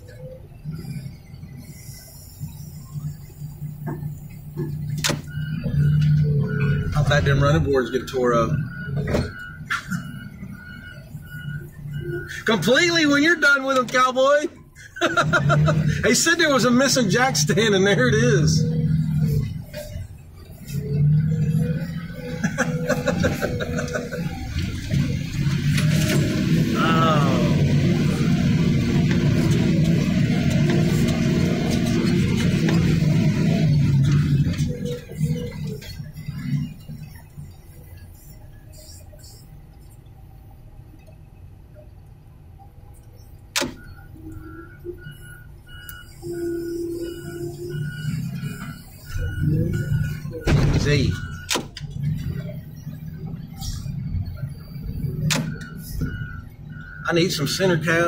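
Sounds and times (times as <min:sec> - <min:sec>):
loader engine and hydraulics: 0:00.0 - 0:58.0
machine squeal: 0:43.2 - 0:58.0
knocks and thumps: 0:50.4 - 0:50.9.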